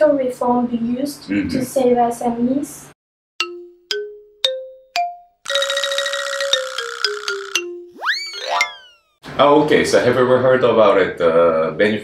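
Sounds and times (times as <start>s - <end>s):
plucked notes jingle: 3.4s - 9.1s.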